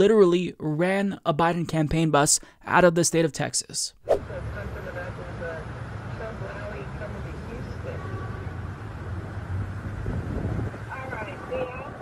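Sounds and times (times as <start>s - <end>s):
low rumble of vehicles driving: 4.2s - 12.0s.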